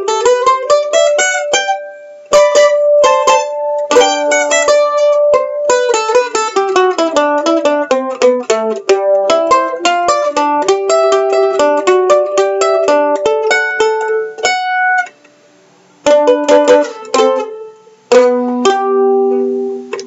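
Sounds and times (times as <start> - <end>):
mandolin picked notes: 0.0 - 20.0.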